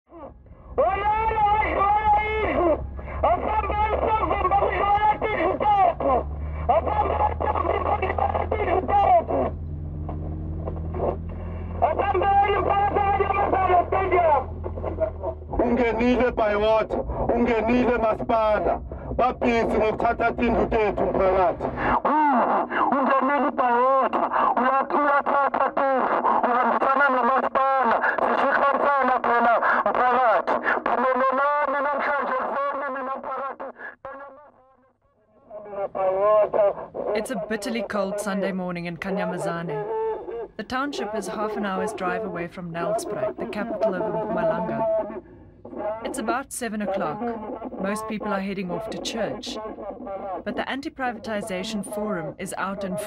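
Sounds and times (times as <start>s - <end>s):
low rumble: 0.1s - 22.1s
vehicle rumble: 0.1s - 32.8s, 35.4s - 53.0s
man calling through loudhailer: 0.8s - 9.6s, 11.0s - 16.3s
voice through loudspeaker horn: 35.7s - 45.2s, 45.8s - 53.0s.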